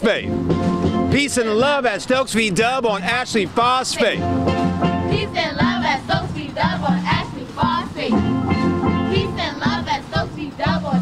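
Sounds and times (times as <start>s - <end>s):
people chanting: 5.1s - 8.2s, 9.1s - 11.0s.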